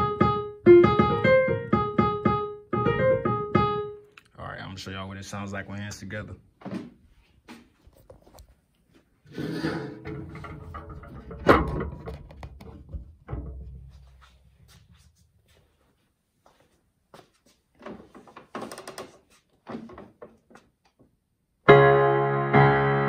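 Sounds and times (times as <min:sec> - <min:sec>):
digital piano chord: 0:00.0 - 0:04.0, 0:21.7 - 0:23.0.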